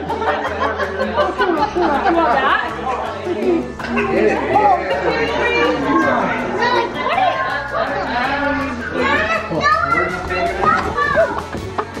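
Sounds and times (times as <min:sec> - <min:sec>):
children and adults chattering: 0:00.0 - 0:12.0
music playing: 0:00.0 - 0:12.0.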